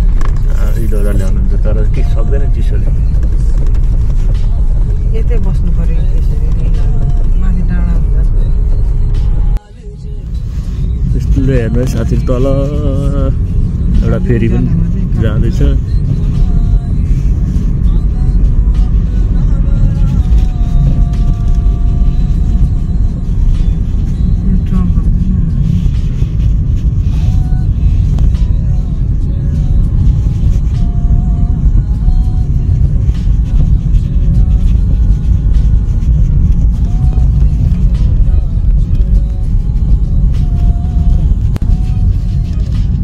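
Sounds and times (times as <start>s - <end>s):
car interior rumble: 0.0s - 43.0s
faint music: 0.1s - 43.0s.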